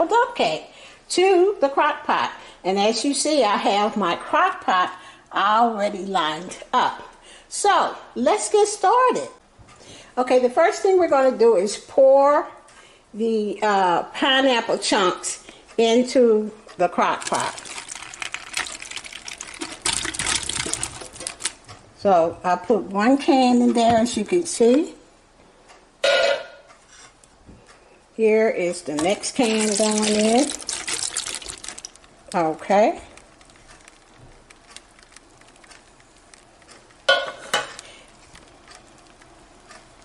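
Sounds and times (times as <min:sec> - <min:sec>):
wet fruit pieces pattering on plastic: 0:16.7 - 0:21.8, 0:28.9 - 0:40.0
plastic liner crinkling: 0:16.8 - 0:21.8, 0:28.9 - 0:37.1
small wet plops: 0:17.1 - 0:21.6, 0:29.0 - 0:32.4
metal can clattering: 0:17.2 - 0:21.6, 0:29.0 - 0:32.0.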